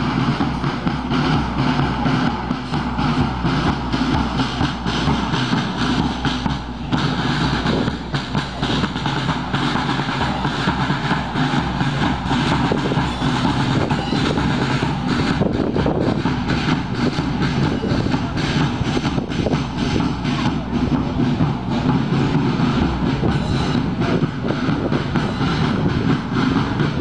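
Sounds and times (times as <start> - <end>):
marching band brass: 0.0 - 27.0
marching band drums: 0.0 - 27.0.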